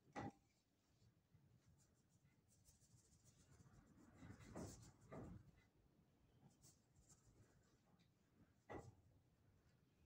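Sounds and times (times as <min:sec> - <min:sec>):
paintbrush strokes on canvas: 0:01.6 - 0:05.4.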